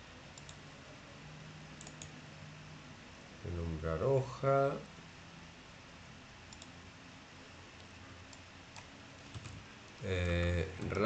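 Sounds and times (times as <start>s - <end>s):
low room hiss: 0.0s - 11.0s
mouse clicks: 1.8s - 2.2s, 6.5s - 6.7s.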